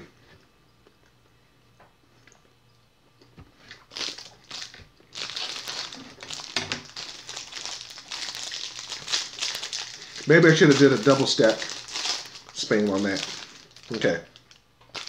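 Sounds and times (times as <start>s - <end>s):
plastic wrapper crinkling: 3.8s - 15.0s.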